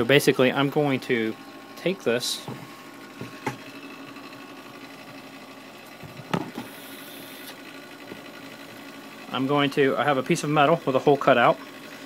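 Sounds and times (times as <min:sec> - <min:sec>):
motor whir: 0:01.1 - 0:12.0.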